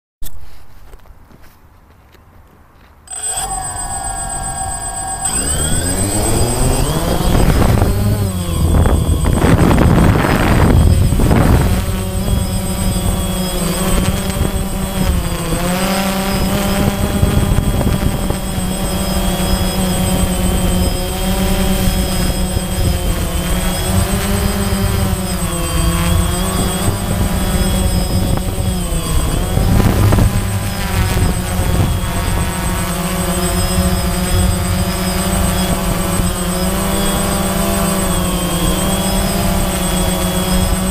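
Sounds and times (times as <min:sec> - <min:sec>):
drone propellers buzzing: 0:03.1 - 0:40.9
wind rumble on microphone: 0:05.2 - 0:40.9.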